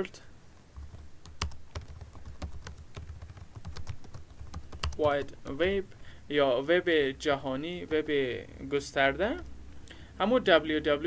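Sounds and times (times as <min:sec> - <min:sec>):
typing on computer keyboard: 0:00.8 - 0:05.6.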